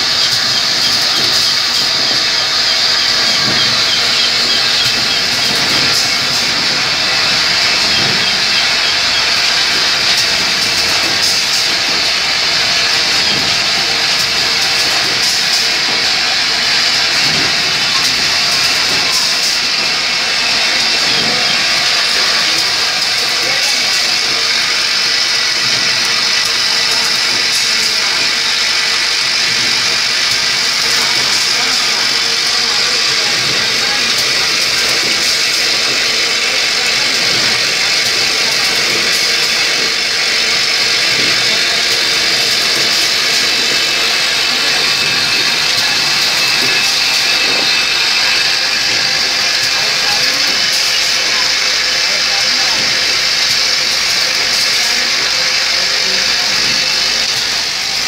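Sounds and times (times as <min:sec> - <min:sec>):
machinery hiss: 0:00.0 - 0:58.0.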